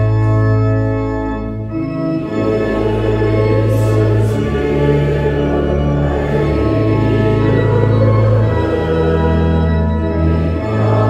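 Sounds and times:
congregation singing a hymn: 0:00.0 - 0:11.0
organ chords: 0:00.0 - 0:11.0.

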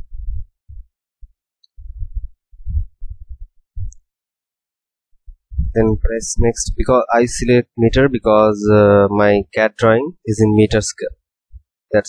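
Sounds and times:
low muffled thumps and rumble: 0:00.0 - 0:04.0, 0:05.3 - 0:07.0.

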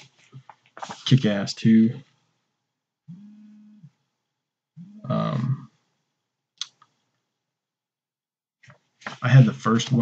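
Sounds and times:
man humming mmm: 0:04.8 - 0:05.7.

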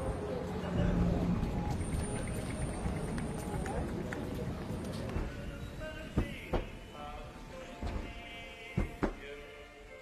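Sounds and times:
hubbub of indistinct voices: 0:00.0 - 0:10.0
street noise: 0:00.0 - 0:10.0.

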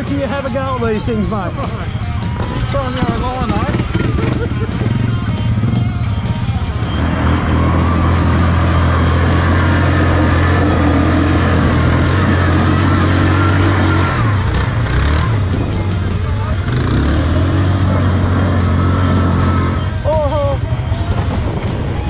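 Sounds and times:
quad bike engine running: 0:00.0 - 0:22.0
wheels spinning on loose dirt: 0:02.1 - 0:22.0.

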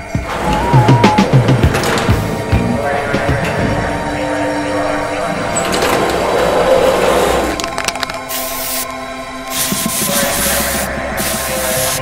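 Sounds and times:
burst of hiss: 0:08.2 - 0:12.0.

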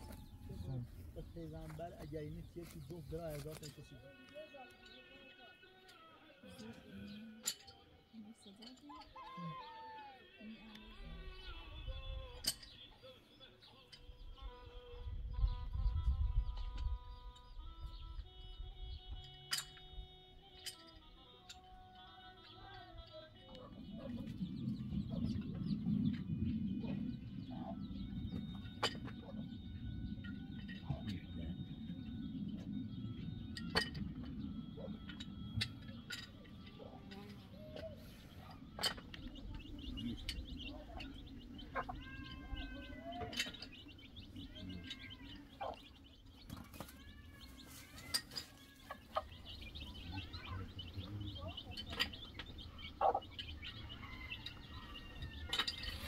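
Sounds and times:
hen and chicks calling: 0:00.0 - 0:03.6, 0:08.2 - 0:15.8, 0:22.7 - 0:32.7, 0:33.5 - 0:56.0.

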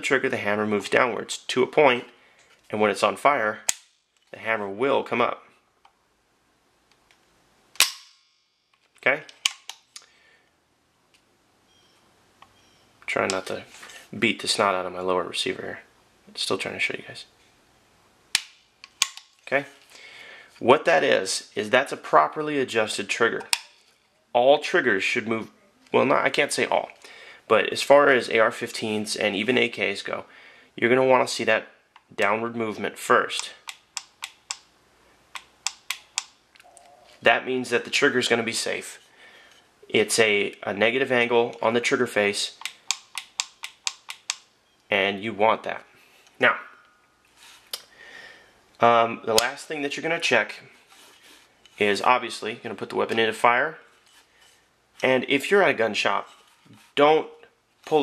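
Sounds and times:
sharp metallic snap of rifle hammer: 0:07.8 - 0:08.3
metallic trigger clicks: 0:42.6 - 0:44.5.

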